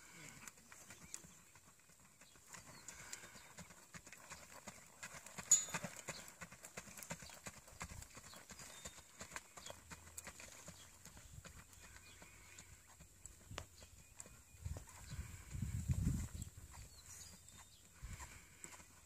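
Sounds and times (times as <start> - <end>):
horse hoofbeats on dirt: 0.0 - 19.0.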